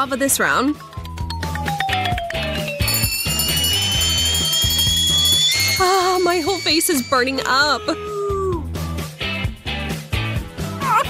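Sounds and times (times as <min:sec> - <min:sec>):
music with a steady beat: 0:00.8 - 0:07.3
falling whistle: 0:01.4 - 0:08.4
long rising whistle: 0:01.6 - 0:08.0.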